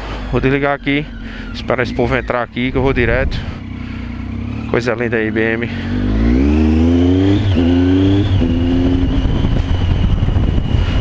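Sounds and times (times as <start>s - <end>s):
motorcycle engine rumble: 0.0s - 11.0s
road rumble: 0.0s - 11.0s
wind rushing over microphone: 1.4s - 3.8s, 5.9s - 11.0s.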